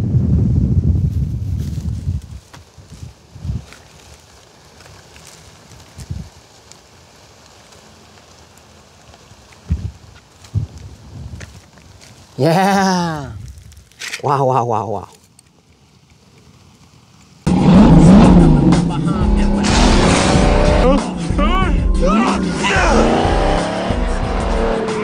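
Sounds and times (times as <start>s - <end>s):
wind rumbling on microphone: 0.0s - 12.4s, 13.2s - 14.0s
footsteps through dry stubble: 1.0s - 14.4s.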